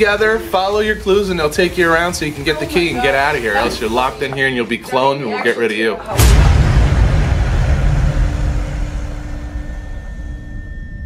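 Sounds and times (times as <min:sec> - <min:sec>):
deep cinematic boom rumble: 0:06.1 - 0:11.0
horror drone tones: 0:06.2 - 0:11.0.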